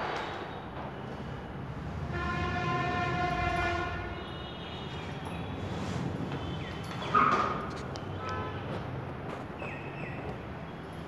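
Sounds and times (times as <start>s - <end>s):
horn steady tone: 0.6s - 8.9s.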